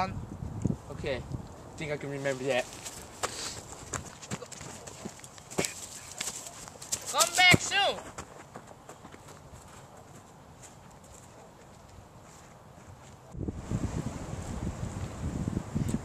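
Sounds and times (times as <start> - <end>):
crackles on dry brush: 2.1 - 7.5.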